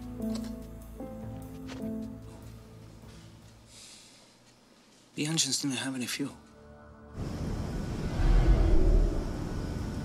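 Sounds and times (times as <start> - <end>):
airliner passing overhead: 7.2 - 10.0.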